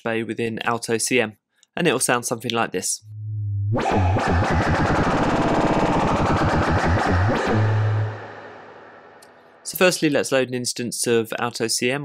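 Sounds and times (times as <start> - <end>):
low sine tone: 3.0 - 9.3
stuttering buzzing synth texture: 3.8 - 9.2.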